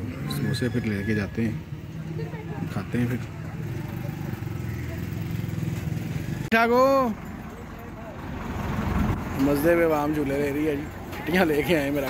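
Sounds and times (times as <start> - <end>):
small truck driving past: 7.2 - 11.0.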